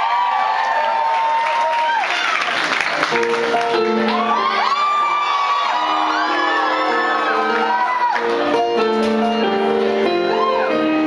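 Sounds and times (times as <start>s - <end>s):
audience whooping and cheering: 0.0s - 9.0s, 10.0s - 11.0s
live band playing held chords: 3.1s - 11.0s.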